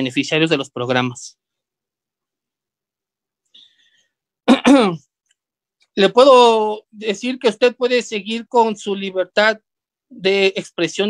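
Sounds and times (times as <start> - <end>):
person clearing throat: 4.4 - 5.1.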